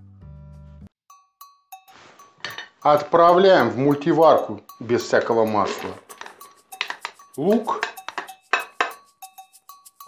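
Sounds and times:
ceramic bowl clinking on pot: 0:02.4 - 0:03.1, 0:05.0 - 0:09.1.

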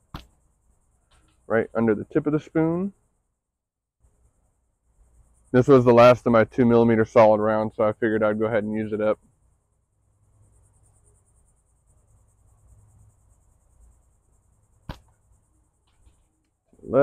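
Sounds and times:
pulsing insect trill: 0:00.0 - 0:17.0
slingshot crack: 0:14.8 - 0:15.2.

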